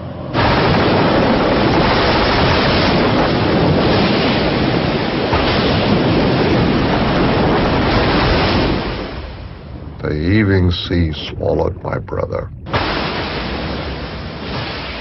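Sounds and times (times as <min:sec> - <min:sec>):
heavy waves: 0:00.0 - 0:15.0
wind: 0:00.0 - 0:15.0.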